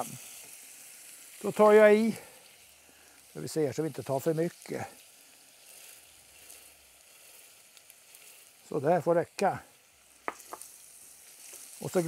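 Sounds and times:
rice pouring into pan: 0.0s - 12.0s
shallots sizzling in oil: 0.0s - 12.0s.

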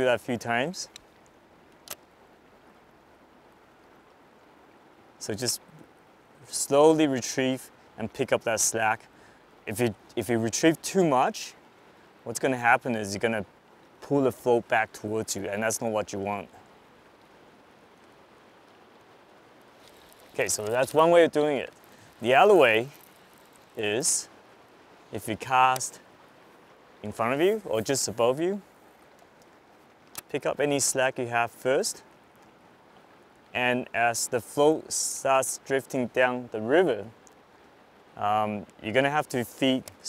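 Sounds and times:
river water flowing: 0.0s - 40.0s.

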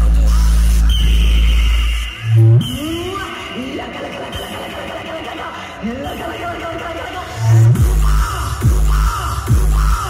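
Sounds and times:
deep steady bass tone: 0.0s - 2.9s.

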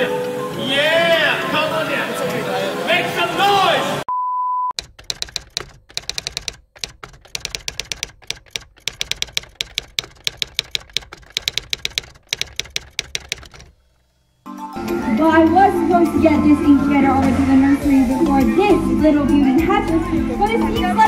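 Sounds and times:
typewriter key clacks: 4.8s - 13.7s.

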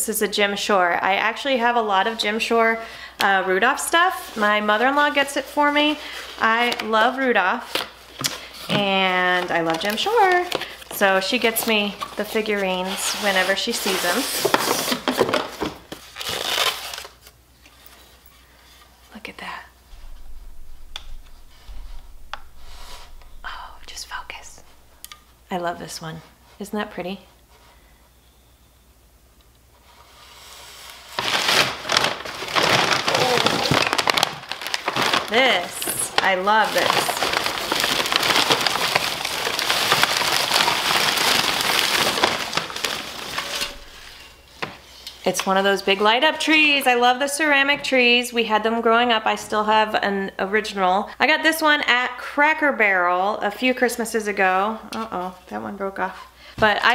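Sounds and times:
styrofoam box rubbing and crunching: 3.6s - 17.2s, 29.9s - 44.4s
wrapping paper rustling: 3.6s - 18.8s, 19.9s - 25.4s, 29.8s - 46.1s.

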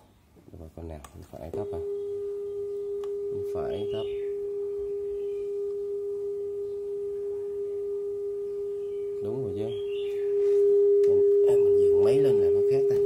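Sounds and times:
steady calibration tone: 1.2s - 13.0s.

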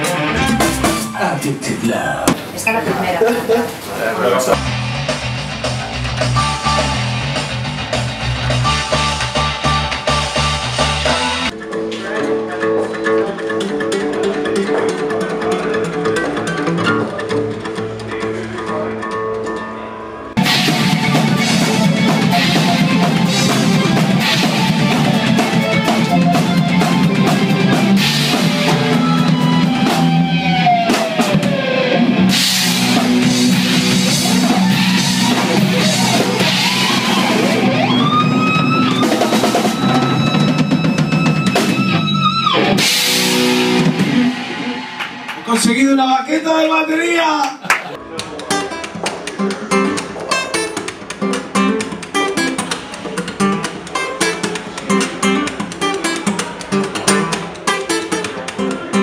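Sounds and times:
loud rock band: 0.0s - 2.6s, 3.6s - 46.8s, 47.9s - 59.0s
electric guitar notes gliding: 4.5s - 45.5s
acoustic guitar solo: 11.6s - 20.4s, 48.4s - 59.0s.

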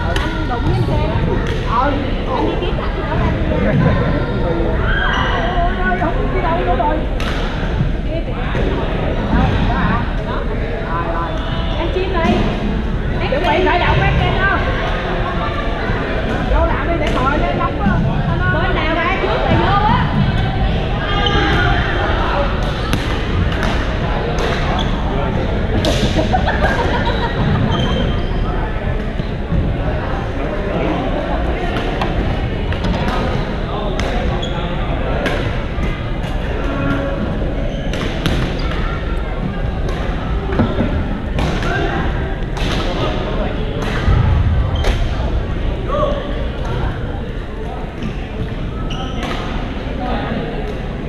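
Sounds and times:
players chattering: 0.0s - 51.0s
sports hall din: 0.0s - 51.0s
shoes squeaking on court: 27.4s - 28.5s, 48.8s - 49.6s.

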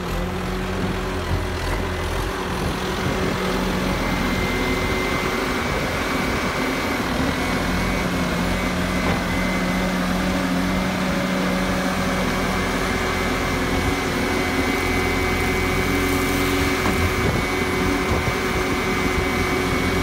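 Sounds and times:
diesel engine running: 0.0s - 20.0s.

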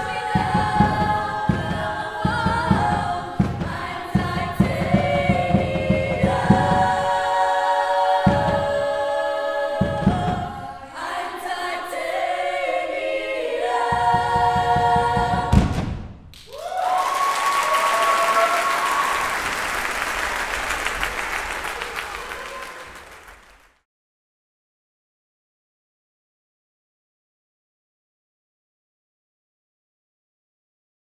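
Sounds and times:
drum beats: 0.0s - 10.7s, 13.0s - 16.3s
women's choir singing: 0.0s - 15.7s
high whoops: 16.4s - 19.6s
applause and cheering: 16.4s - 23.8s.

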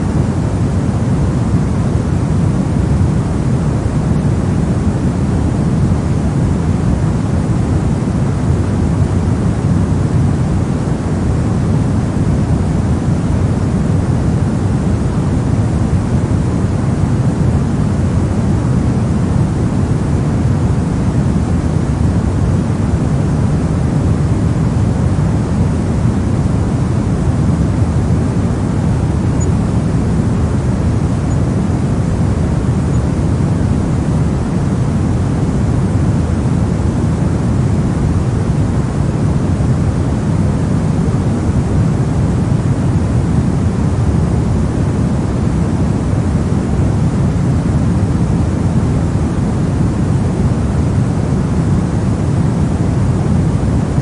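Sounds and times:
pink noise hiss: 0.0s - 54.0s.

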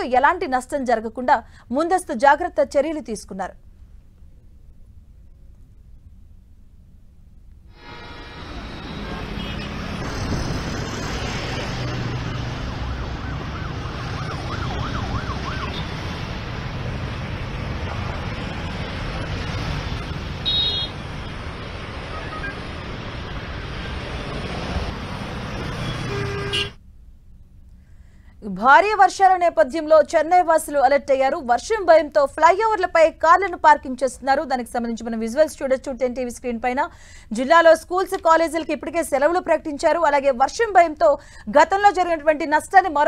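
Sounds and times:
road traffic: 3.6s - 28.4s
motorbikes passing: 7.8s - 26.7s.

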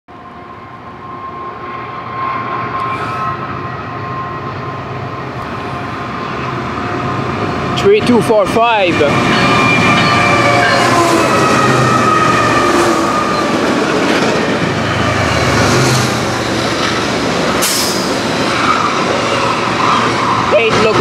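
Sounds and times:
freight train rumbling past: 0.1s - 21.0s
locomotive whine falling in pitch: 9.0s - 14.0s.

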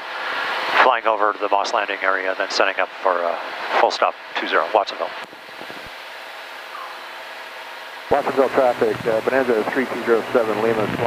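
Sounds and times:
airplane engine and propeller drone: 0.0s - 11.0s
airflow noise: 5.3s - 11.0s.

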